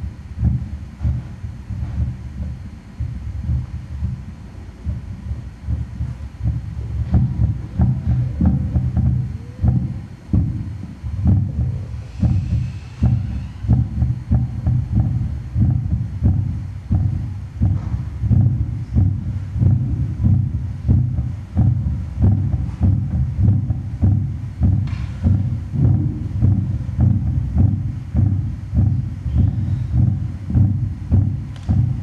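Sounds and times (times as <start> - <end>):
amplified heartbeat: 0.0 - 32.0.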